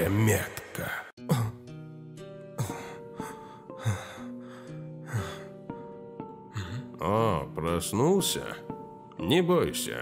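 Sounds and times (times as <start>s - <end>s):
background music with held notes: 0.0s - 10.0s
heavy gasping breaths: 2.6s - 5.6s.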